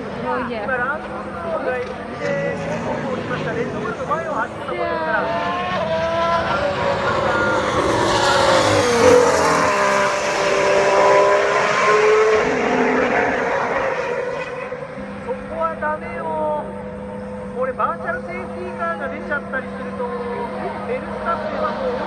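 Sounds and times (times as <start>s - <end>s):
spectators talking: 0.0s - 10.7s, 12.0s - 22.0s
racing car engine passing: 0.0s - 22.0s.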